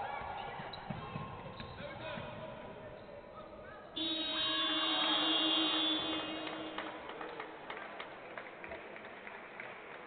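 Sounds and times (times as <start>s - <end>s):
arena horn: 4.0s - 6.9s.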